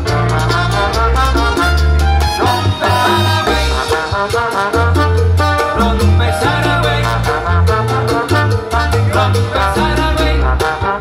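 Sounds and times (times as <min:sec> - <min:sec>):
salsa band playing: 0:00.0 - 0:11.0.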